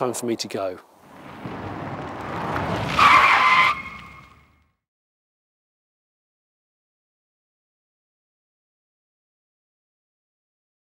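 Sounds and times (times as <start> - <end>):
car tyres screeching: 1.0 - 4.7.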